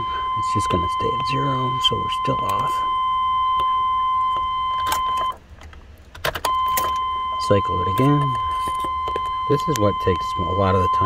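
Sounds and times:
high electronic warning tone: 0.0s - 5.4s, 6.5s - 11.0s
ignition key clicks: 0.7s - 2.8s, 3.4s - 10.4s.

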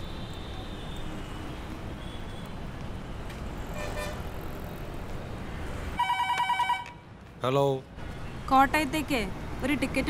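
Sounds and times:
low city traffic rumble: 0.0s - 10.0s.

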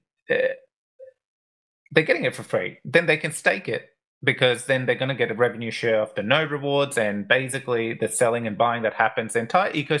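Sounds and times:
man saying uh: 0.3s - 0.6s
speech: 0.3s - 0.7s, 1.9s - 10.0s.

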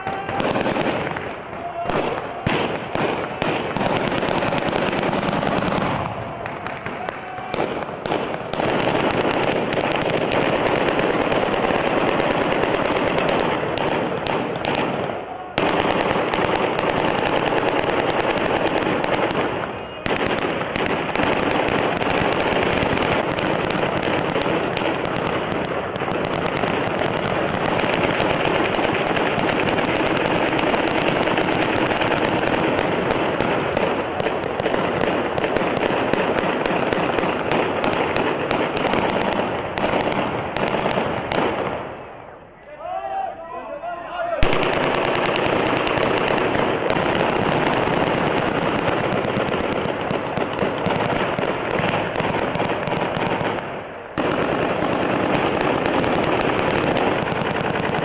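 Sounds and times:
automatic gunfire: 0.0s - 41.8s, 44.4s - 58.0s
men shouting: 42.7s - 44.4s.

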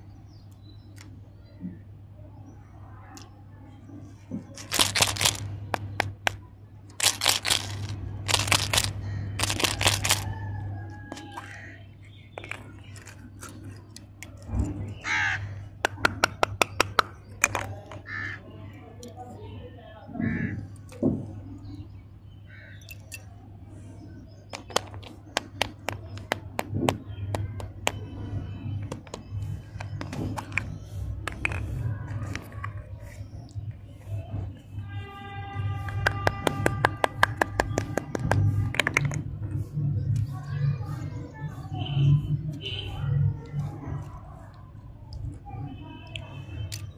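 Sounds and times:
wrapper rustling: 4.6s - 5.5s, 6.9s - 10.3s
lollipop wrapper crackling: 4.6s - 10.3s.

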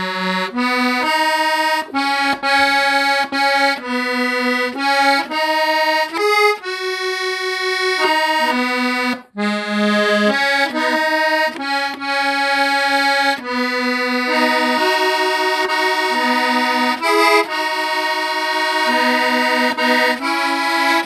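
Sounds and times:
accordion playing: 0.0s - 21.0s.

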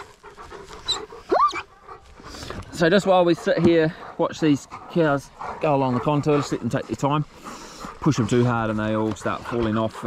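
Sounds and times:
dog whining: 0.8s - 1.7s.

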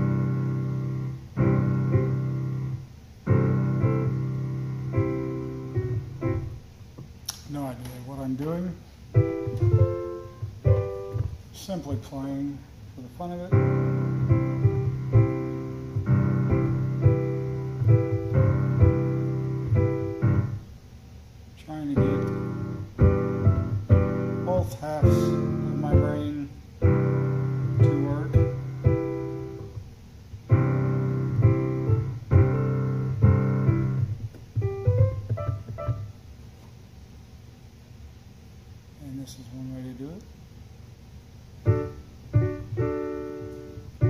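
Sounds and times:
digital piano chords: 0.0s - 20.8s, 21.7s - 36.6s, 41.5s - 44.0s.

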